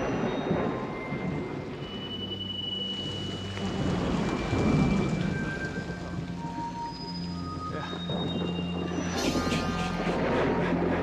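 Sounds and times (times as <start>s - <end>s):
thunder rumble: 0.0s - 2.1s, 3.0s - 11.0s
heavy rain pouring: 0.0s - 11.0s.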